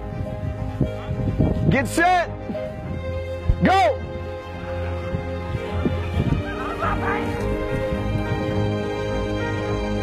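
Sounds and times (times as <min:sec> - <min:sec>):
background music: 0:00.0 - 0:10.0.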